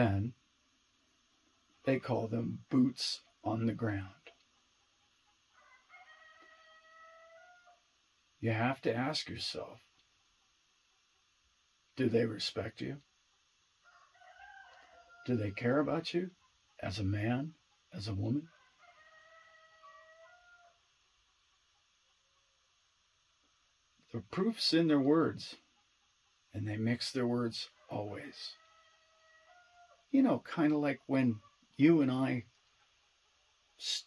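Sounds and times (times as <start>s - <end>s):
faint drawn-out animal call: 1.5s - 7.9s, 13.8s - 22.6s, 24.1s - 34.0s.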